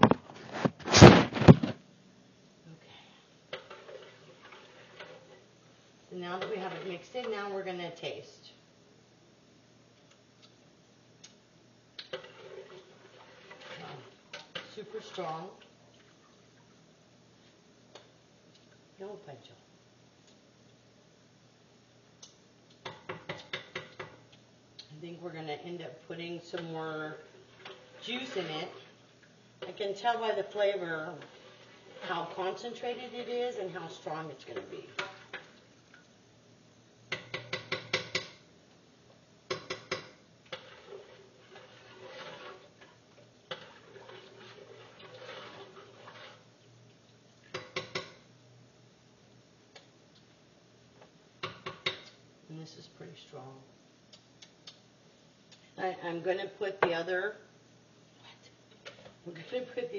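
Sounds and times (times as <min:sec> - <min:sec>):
faint steady hum: 0:00.0 - 0:59.9
spoon tapping a metal pot: 0:37.1 - 0:38.4.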